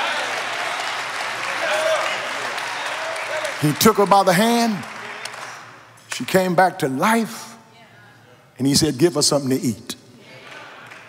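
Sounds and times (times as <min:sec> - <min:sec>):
congregation applauding: 0:00.0 - 0:06.5, 0:10.4 - 0:11.0.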